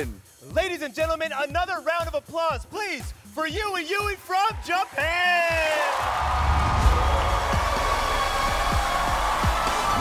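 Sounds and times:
music with bass drum beat: 0.0s - 4.7s, 5.4s - 10.0s
audience applauding and cheering: 4.1s - 10.0s.

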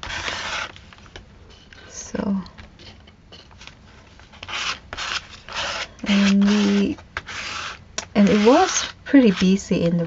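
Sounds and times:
applicator scraping on paper: 0.0s - 0.8s, 4.4s - 9.6s.

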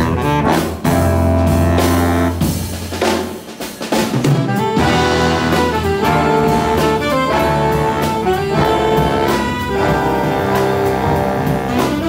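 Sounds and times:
big band playing jazz: 0.0s - 12.0s.

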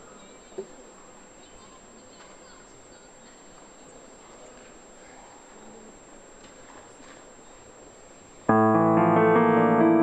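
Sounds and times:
grand piano chords: 8.5s - 10.0s.

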